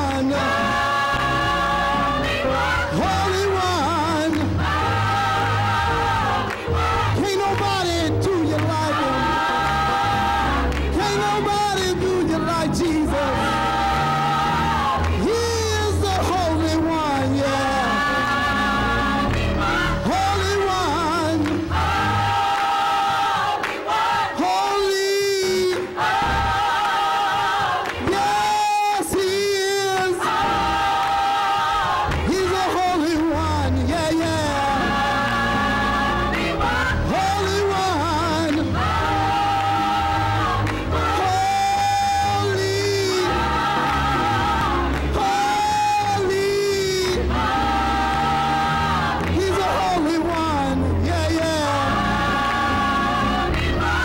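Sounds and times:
instrumental bass accompaniment: 0.0 - 22.4, 30.3 - 54.0
gospel choir singing: 0.0 - 54.0
bass line: 31.8 - 54.0.

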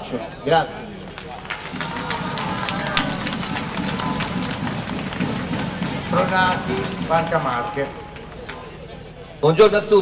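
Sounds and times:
voices chattering: 0.0 - 10.0
crowd applauding: 1.1 - 8.9.

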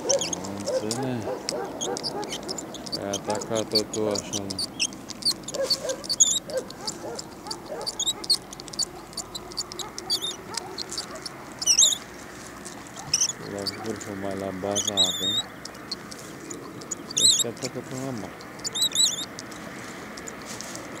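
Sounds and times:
small birds chirping and warbling: 0.0 - 21.0.

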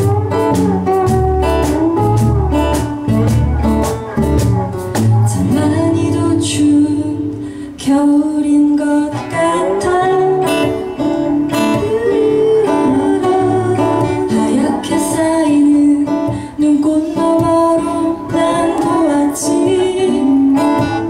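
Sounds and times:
acoustic guitars: 0.0 - 21.0
woman singing: 5.1 - 21.0.

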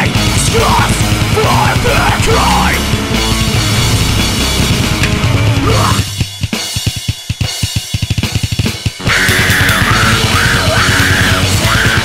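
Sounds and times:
sustained electric guitar: 0.0 - 6.2, 9.0 - 12.0
rapid kick drum strikes: 0.0 - 10.4
cymbals and snare: 3.3 - 9.6.

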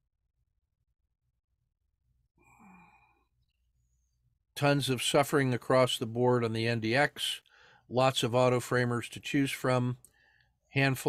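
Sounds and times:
man sighing: 2.4 - 3.2.

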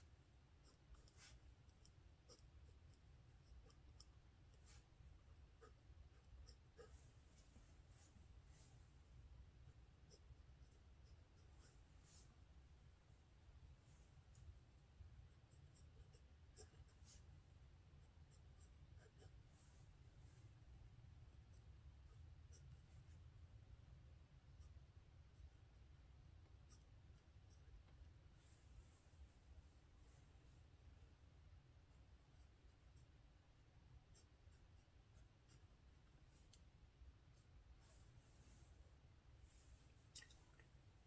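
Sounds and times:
low steady hum: 0.0 - 41.0
pen scratching on paper: 0.4 - 8.7, 9.4 - 12.3, 15.2 - 19.5, 26.4 - 27.8, 33.9 - 35.9.

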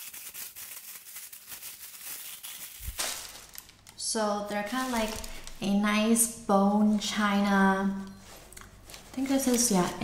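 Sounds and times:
tissue paper crinkling: 0.0 - 3.9, 4.5 - 5.8, 8.2 - 10.0.

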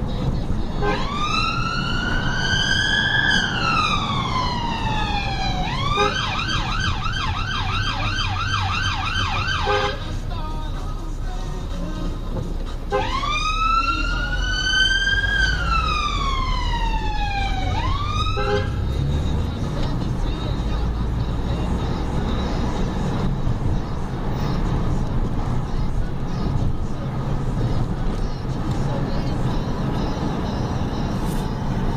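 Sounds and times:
car engine and road noise: 0.0 - 31.9
siren wailing: 0.9 - 10.0, 13.0 - 18.7.

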